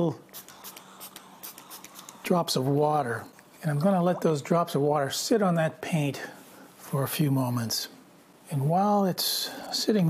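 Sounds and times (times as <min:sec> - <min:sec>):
water atomizer hissing: 0:00.0 - 0:03.2.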